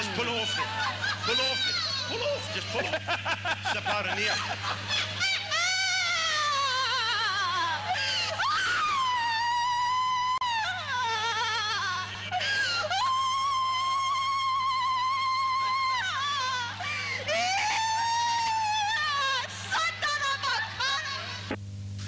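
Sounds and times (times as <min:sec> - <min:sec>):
electrical hum: 0:00.0 - 0:22.0
person wailing high-pitched: 0:17.3 - 0:21.0.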